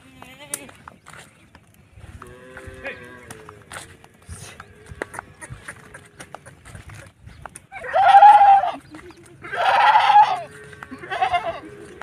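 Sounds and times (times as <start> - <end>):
goats bleating: 7.7 - 12.0.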